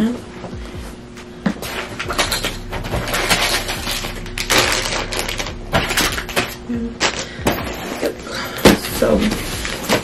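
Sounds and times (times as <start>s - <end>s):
items rustling and clicking: 1.1s - 10.0s.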